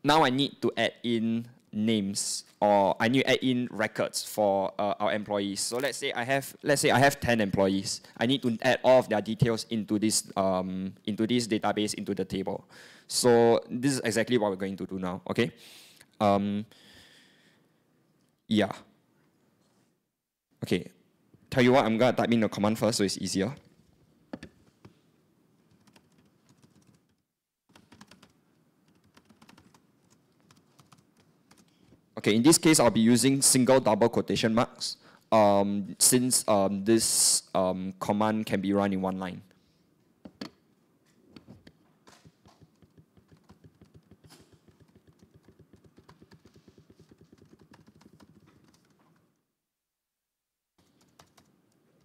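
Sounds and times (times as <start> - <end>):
typing on keyboard: 25.7 - 31.7, 42.1 - 49.2, 50.8 - 52.0.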